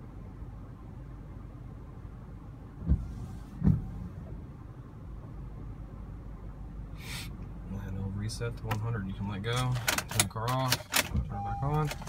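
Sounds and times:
low car cabin hum: 0:00.0 - 0:12.0
soft thumps: 0:02.8 - 0:04.0.

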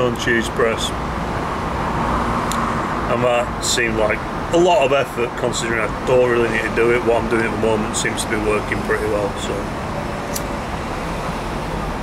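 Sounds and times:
short click: 0:10.3 - 0:10.5.

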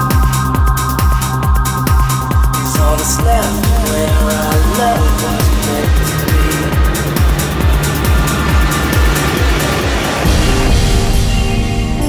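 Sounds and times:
held synth chords: 0:00.0 - 0:12.0
kick drum: 0:00.0 - 0:12.0
trance dance music: 0:00.0 - 0:12.0
person singing: 0:02.5 - 0:08.8.

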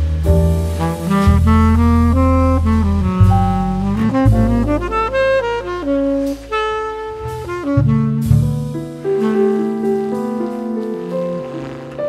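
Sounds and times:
sustained bass line: 0:00.0 - 0:12.0
saxophone melody: 0:00.6 - 0:12.0.

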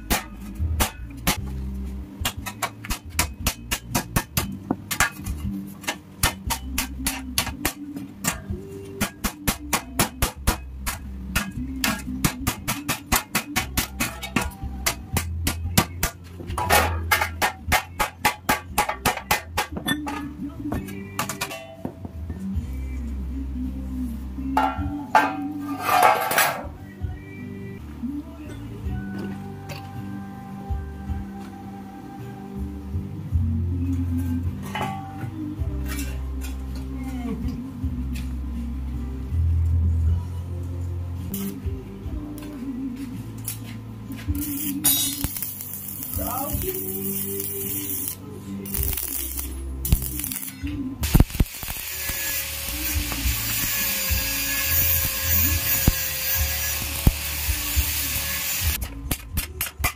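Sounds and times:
background music: 0:00.0 - 0:59.9
metal tray clanking on concrete: 0:16.0 - 0:20.4, 0:24.6 - 0:26.7
metal tray scraping on floor: 0:25.1 - 0:26.8
arc welding crackling hiss: 0:44.3 - 0:58.8.

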